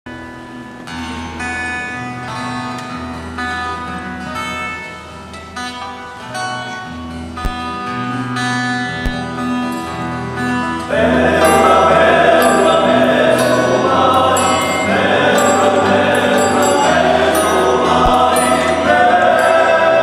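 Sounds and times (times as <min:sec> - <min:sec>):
acoustic guitars picking: 0:00.1 - 0:20.0
low sustained notes: 0:08.2 - 0:20.0.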